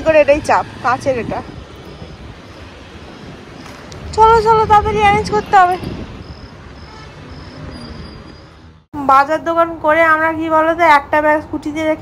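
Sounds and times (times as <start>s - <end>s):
faint outdoor background noise: 0.0s - 12.0s
cricket chirping: 6.2s - 8.6s.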